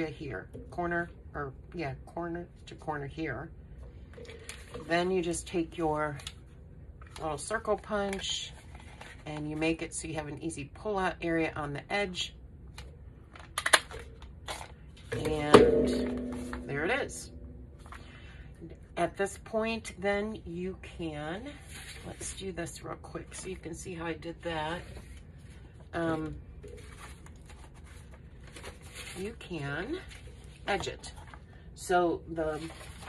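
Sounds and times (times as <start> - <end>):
paper rustling: 8.5 - 9.4, 26.6 - 29.3, 32.6 - 33.0.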